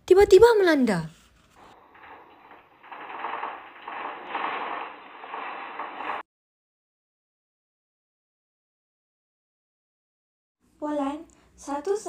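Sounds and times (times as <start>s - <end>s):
house shaking in earthquake: 1.6s - 6.2s.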